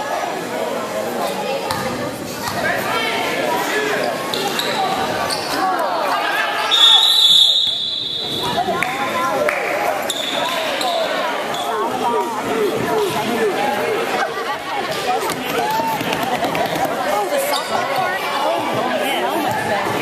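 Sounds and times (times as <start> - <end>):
crowd talking: 0.0 - 20.0.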